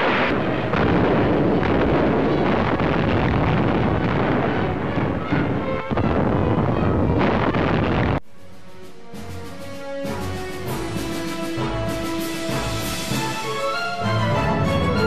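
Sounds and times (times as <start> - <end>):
naval gunfire and explosions: 0.0 - 8.2
soundtrack music: 8.3 - 15.0.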